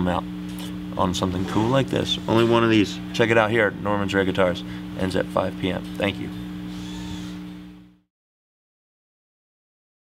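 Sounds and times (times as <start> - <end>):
low hum with two tones: 0.0 - 8.1.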